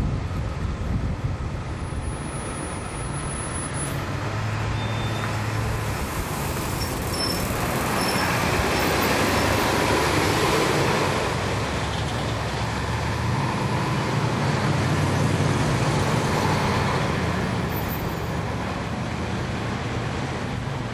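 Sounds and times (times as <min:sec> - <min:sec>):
bus engine drone: 0:00.0 - 0:20.9
road noise: 0:00.0 - 0:20.9.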